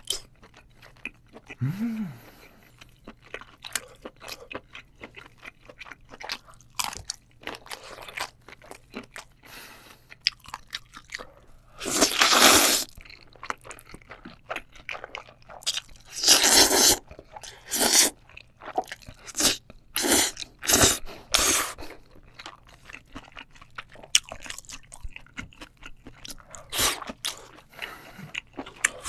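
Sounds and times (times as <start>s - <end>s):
wet chewing: 2.5s - 9.4s, 10.0s - 29.0s
noodle slurping: 16.1s - 17.0s.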